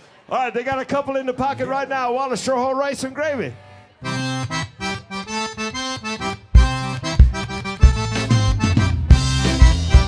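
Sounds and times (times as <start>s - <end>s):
button accordion: 2.6s - 10.0s
drums and bass beat: 6.5s - 10.0s.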